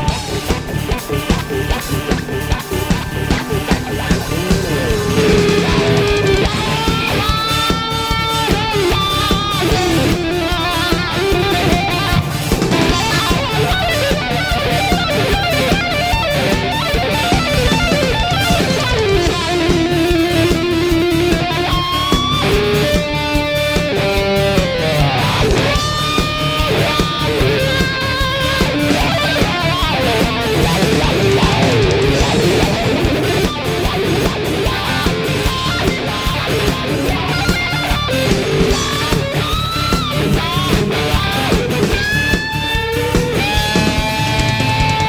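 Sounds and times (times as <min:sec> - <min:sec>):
bass: 0:00.0 - 0:45.0
drums: 0:00.0 - 0:45.0
electric guitar melody: 0:00.0 - 0:45.0
keyboards: 0:00.0 - 0:45.0.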